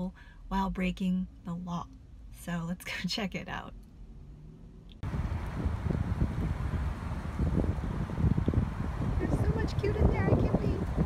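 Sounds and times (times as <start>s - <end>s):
faint hum inside car: 0.0s - 10.0s
wind buffeting phone microphone: 5.0s - 11.0s.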